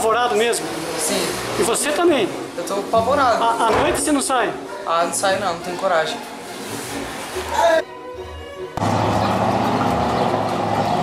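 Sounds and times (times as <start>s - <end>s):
vehicle engine running: 8.8s - 11.0s.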